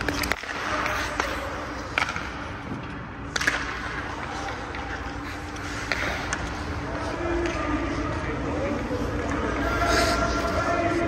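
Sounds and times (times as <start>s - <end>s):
hockey stick striking puck: 0.0s - 6.6s.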